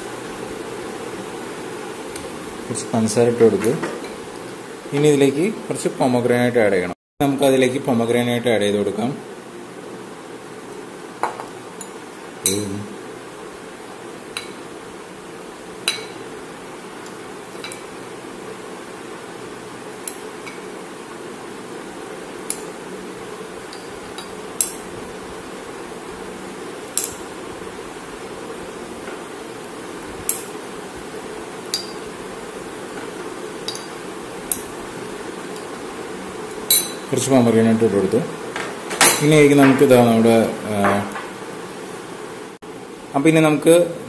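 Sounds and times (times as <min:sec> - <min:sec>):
low background noise: 0:00.0 - 0:44.0
metal spoon clinking on glass: 0:15.9 - 0:16.2, 0:31.7 - 0:32.0, 0:33.6 - 0:34.7, 0:36.7 - 0:37.1.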